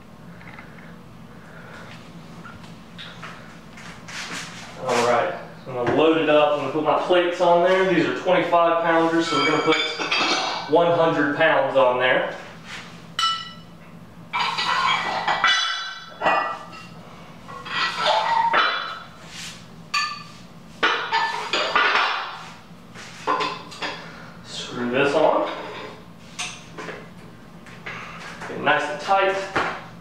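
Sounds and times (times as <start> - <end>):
weight plates clanking on metal pipe: 9.2 - 10.7.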